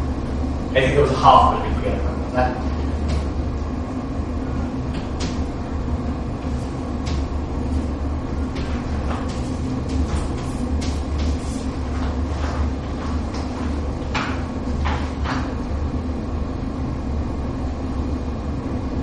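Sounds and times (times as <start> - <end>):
steady low hum: 0.0 - 19.0
chalk tapping and scratching: 8.5 - 15.6.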